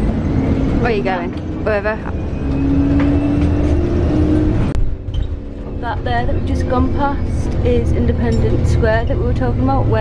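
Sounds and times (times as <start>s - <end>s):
bus engine rumble and hum: 0.0s - 10.0s.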